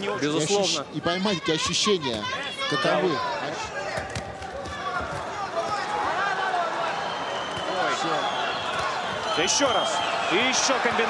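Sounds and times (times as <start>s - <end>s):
crowd shouting: 2.0s - 11.0s.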